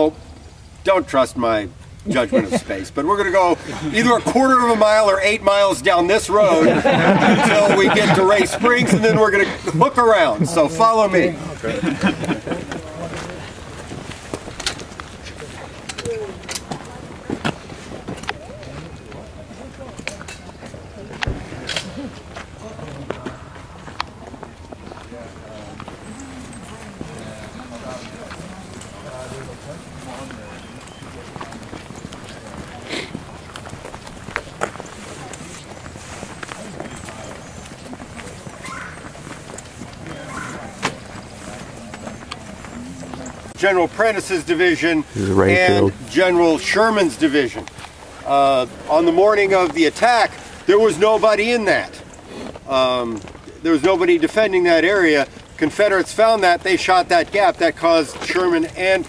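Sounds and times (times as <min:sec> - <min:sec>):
footsteps of group walking: 0:00.0 - 0:59.0
people talking quietly: 0:00.0 - 0:59.0
faint talking: 0:45.0 - 0:46.1.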